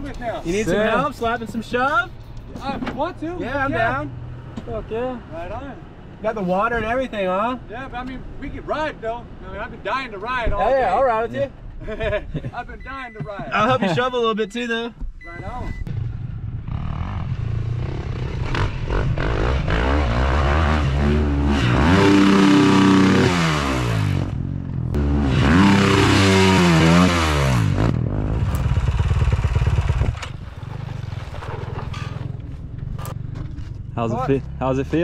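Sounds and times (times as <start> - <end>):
dirt bike engine revving: 16.5 - 32.4.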